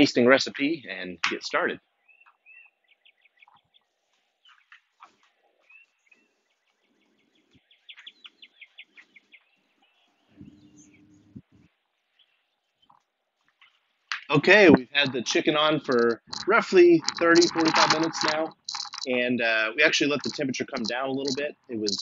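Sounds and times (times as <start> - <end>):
songbirds chirping: 0.0 - 22.0.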